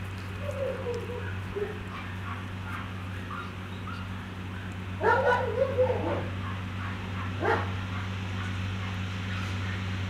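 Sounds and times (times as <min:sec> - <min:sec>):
steady low hum: 0:00.0 - 0:10.0
dog barking: 0:05.0 - 0:09.5.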